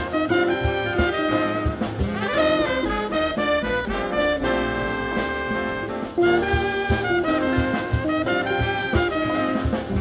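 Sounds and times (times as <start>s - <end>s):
jazz ensemble playing: 0.0s - 10.0s.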